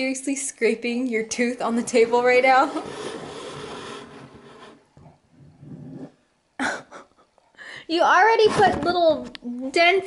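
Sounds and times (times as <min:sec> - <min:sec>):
tooth scraping table edge: 0:01.6 - 0:06.3.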